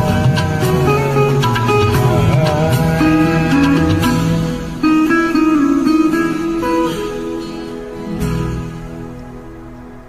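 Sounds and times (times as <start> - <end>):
acoustic guitar playing: 0.0 - 10.0.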